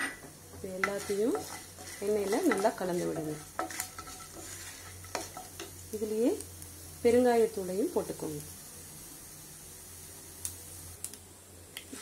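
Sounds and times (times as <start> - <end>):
food sizzling in oil: 0.0 - 11.2.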